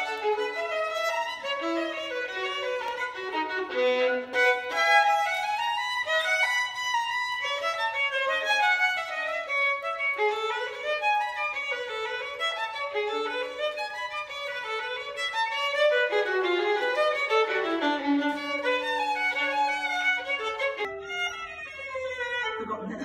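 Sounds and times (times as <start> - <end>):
solo violin playing quick runs: 0.0 - 22.5.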